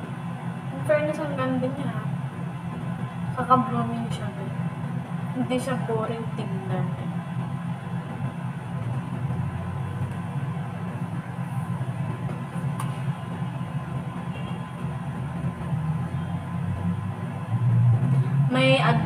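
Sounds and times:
low outdoor din: 0.0 - 19.0.

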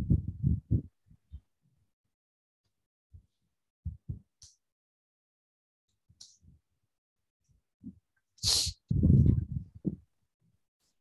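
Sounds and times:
air puffs on microphone: 8.4 - 9.6.

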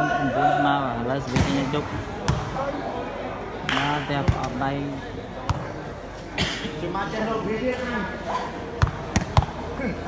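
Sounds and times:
spectators' voices in a hall: 0.0 - 10.0.

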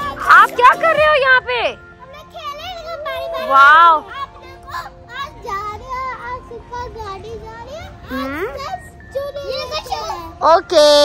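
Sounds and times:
background music: 0.0 - 11.0
children chattering and calling: 0.0 - 11.0.

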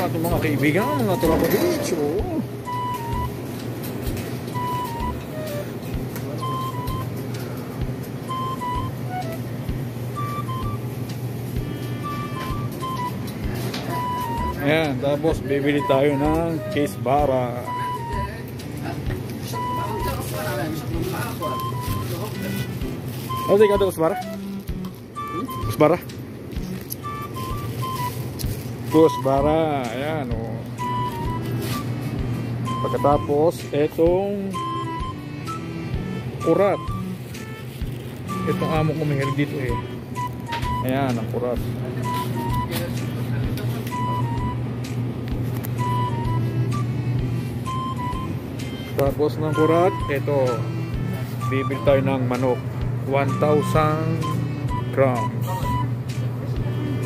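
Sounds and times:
high electronic melody: 0.0 - 7.2, 7.8 - 45.1, 45.7 - 57.0
mix of voices: 0.0 - 57.0
steady low hum: 0.0 - 57.0
short electronic beeps: 0.6 - 1.9, 6.4 - 7.1, 23.3 - 24.3, 36.4 - 37.6, 47.6 - 50.6, 51.4 - 52.6, 53.2 - 55.9
plastic bag crinkling: 21.0 - 23.8.

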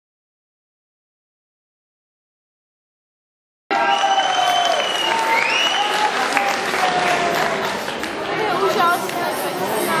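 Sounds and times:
calls from audience: 3.7 - 8.2
audience applauding: 3.7 - 9.2.

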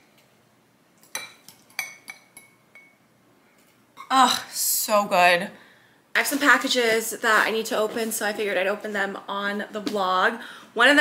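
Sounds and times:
spoon clinking against ceramic bowl: 1.1 - 3.0.

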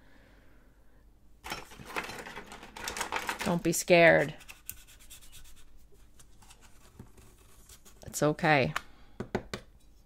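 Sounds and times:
scratchy clicking and rubbing: 2.4 - 8.0.

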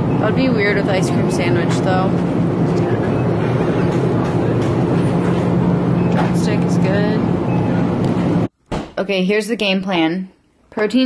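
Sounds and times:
refrigeration fans rushing: 0.0 - 8.5.

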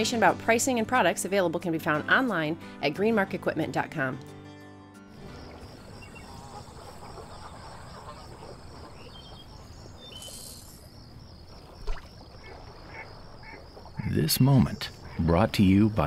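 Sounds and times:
ducks calling: 5.2 - 16.0.

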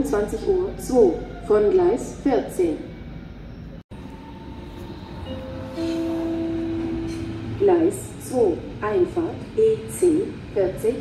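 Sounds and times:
train rumble: 0.0 - 11.0
train whine: 2.5 - 11.0.

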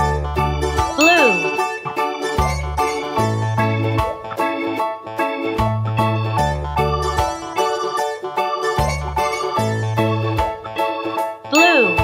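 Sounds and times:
cheerful children's music: 0.0 - 12.0
cartoon pitch sweep effect: 1.0 - 2.0, 11.6 - 12.0
bright ding: 1.0 - 2.4, 11.6 - 12.0.

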